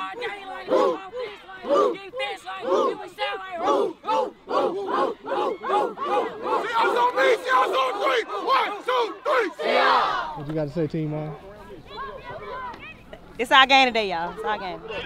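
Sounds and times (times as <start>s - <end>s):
players shouting a chant: 0.0s - 10.5s, 11.4s - 13.1s.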